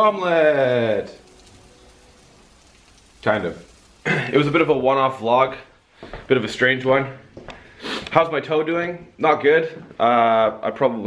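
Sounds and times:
frying pan sizzling: 0:00.0 - 0:06.9.

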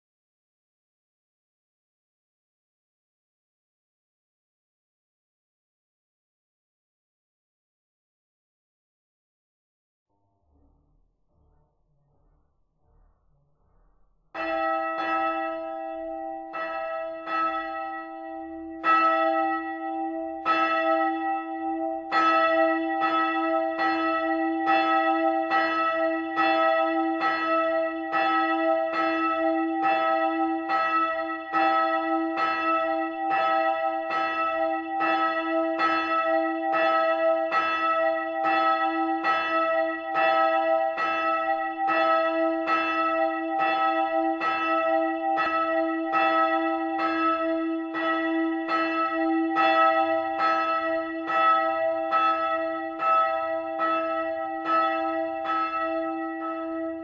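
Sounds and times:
church bell ringing: 0:14.3 - 0:57.0.

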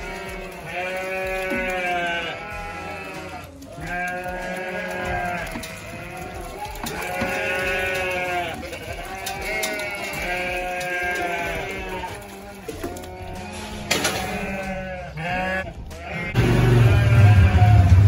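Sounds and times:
sheep bleating: 0:00.0 - 0:18.0.

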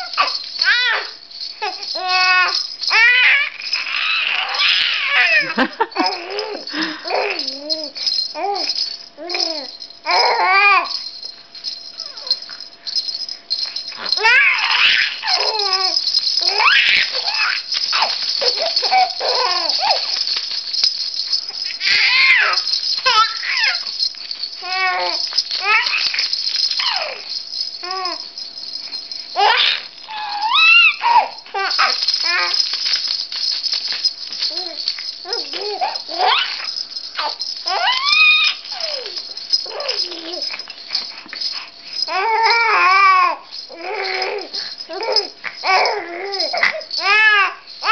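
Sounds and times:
baby squealing with laughter: 0:00.0 - 0:08.7, 0:14.0 - 0:20.2, 0:21.8 - 0:23.9, 0:26.8 - 0:27.2, 0:29.4 - 0:32.6, 0:34.6 - 0:40.5, 0:42.1 - 0:47.9
plush toy rattle shaken: 0:00.0 - 0:47.9.

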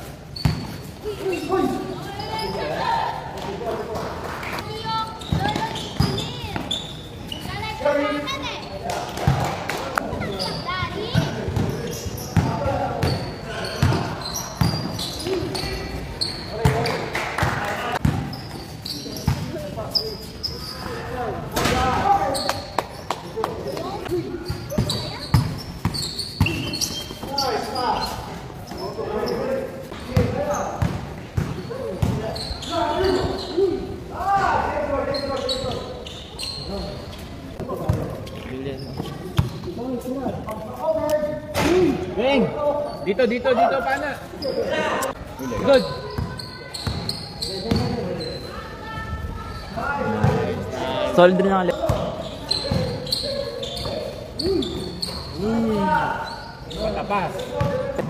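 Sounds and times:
basketballs bouncing on concrete: 0:05.2 - 0:06.7, 0:10.9 - 0:13.2, 0:13.8 - 0:15.5, 0:16.6 - 0:18.3, 0:19.2 - 0:19.6, 0:22.8 - 0:27.3, 0:30.1 - 0:32.3, 0:39.0 - 0:39.8, 0:46.0 - 0:48.2, 0:57.5 - 0:58.0.

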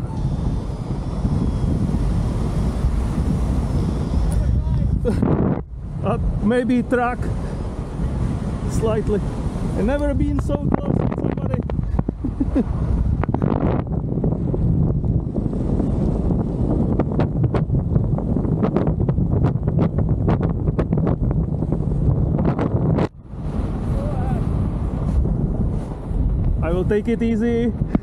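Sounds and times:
wind noise on microphone: 0:00.0 - 0:28.0.

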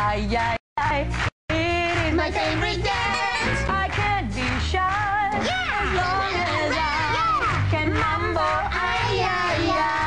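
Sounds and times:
high puppet voices singing: 0:01.5 - 0:10.0.

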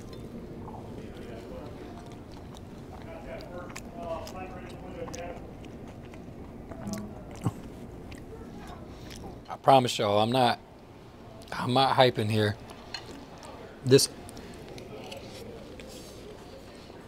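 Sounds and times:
person chewing: 0:00.6 - 0:09.5.

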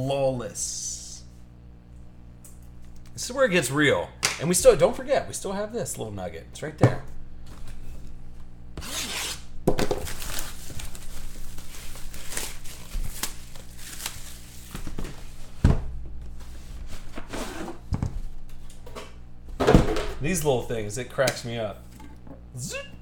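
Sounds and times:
packaging ripping: 0:08.8 - 0:14.8
packaging rustling: 0:09.8 - 0:15.5.

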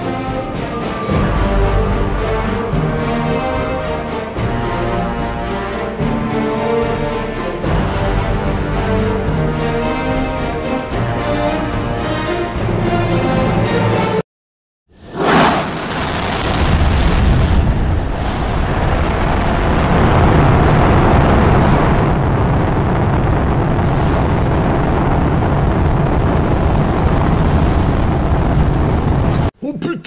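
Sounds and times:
rocket engines roaring: 0:15.0 - 0:29.5.

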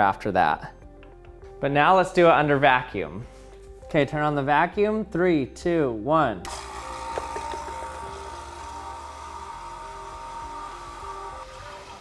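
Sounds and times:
vacuum pump humming and whining: 0:06.5 - 0:12.0.

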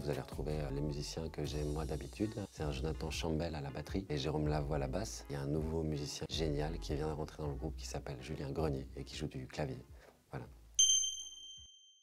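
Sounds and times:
bright ding: 0:10.8 - 0:12.0.

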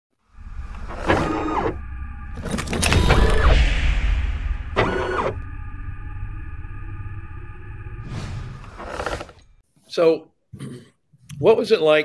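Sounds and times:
low rumble: 0:00.2 - 0:09.6
motorised whirring and sliding: 0:00.6 - 0:01.8, 0:04.8 - 0:05.4, 0:08.6 - 0:09.4.

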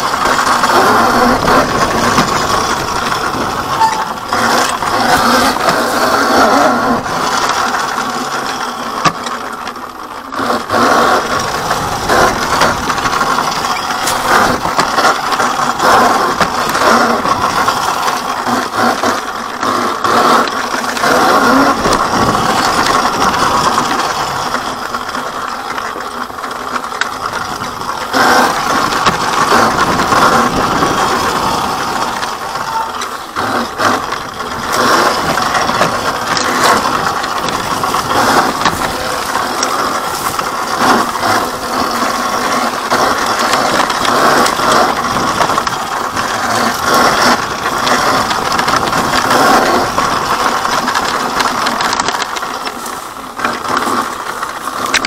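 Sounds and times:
dirt bike rattling and clattering: 0:00.0 - 0:55.0.

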